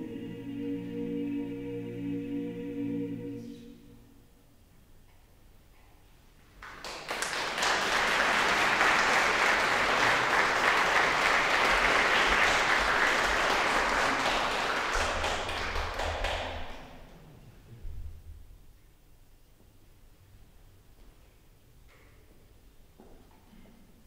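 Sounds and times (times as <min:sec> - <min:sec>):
audience applauding: 0:06.6 - 0:17.1.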